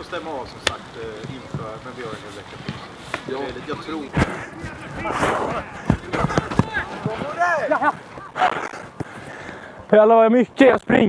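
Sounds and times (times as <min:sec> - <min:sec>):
player calling: 0:00.0 - 0:10.0
football being kicked: 0:05.4 - 0:07.4.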